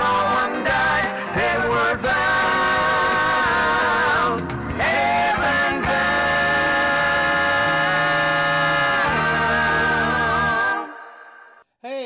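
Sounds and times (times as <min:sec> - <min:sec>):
gospel music sustained chord: 0:00.0 - 0:11.6.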